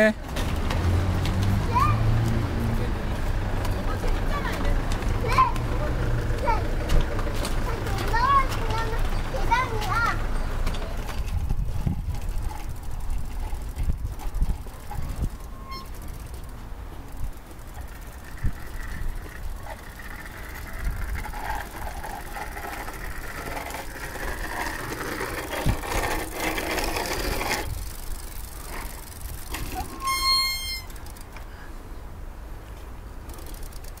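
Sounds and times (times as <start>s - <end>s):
bicycle rolling on asphalt: 0.1s - 34.0s
wind rumble on microphone: 11.0s - 15.8s, 20.4s - 22.4s, 25.5s - 26.1s
short high beep: 15.5s - 16.0s, 30.0s - 31.0s.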